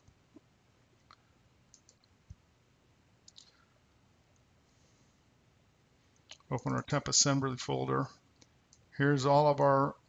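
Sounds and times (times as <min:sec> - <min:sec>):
faint mouse clicks: 0:00.0 - 0:02.4, 0:03.2 - 0:03.6, 0:06.1 - 0:06.5, 0:08.3 - 0:08.9.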